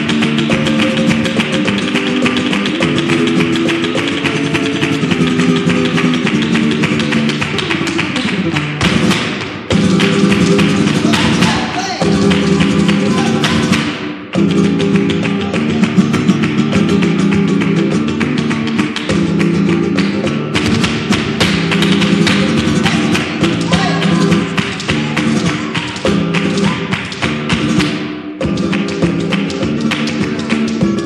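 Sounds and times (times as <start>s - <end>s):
flamenco guitar: 0.0s - 31.0s
sharp percussive taps and thumps: 0.0s - 31.0s.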